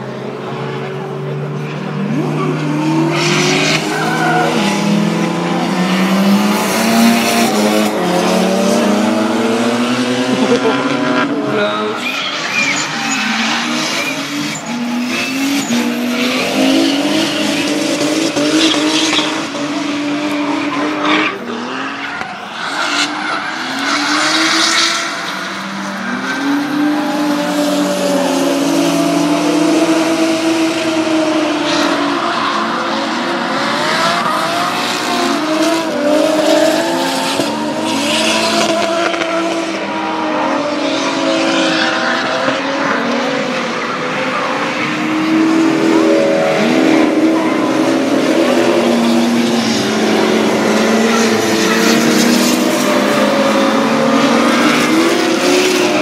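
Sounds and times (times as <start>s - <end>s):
car engines revving hard: 0.0s - 56.0s.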